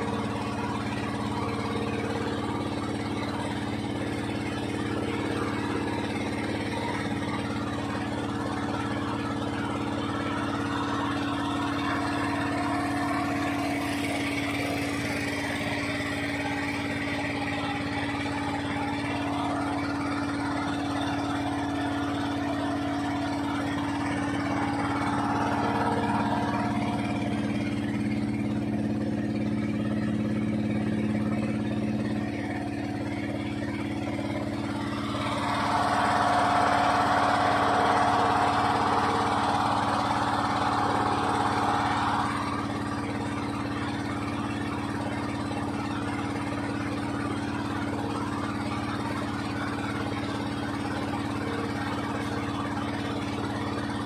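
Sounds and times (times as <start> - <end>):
boat engine running: 0.0 - 54.0.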